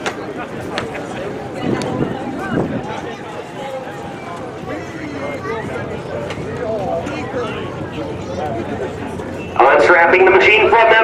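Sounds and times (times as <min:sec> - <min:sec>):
background talk: 0:00.0 - 0:11.0
man talking loudly: 0:09.6 - 0:11.0.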